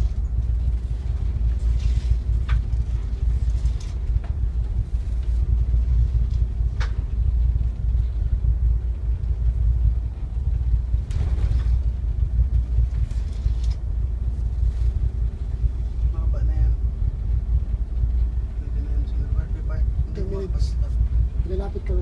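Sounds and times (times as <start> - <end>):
boat engine rumbling: 0.0 - 22.0.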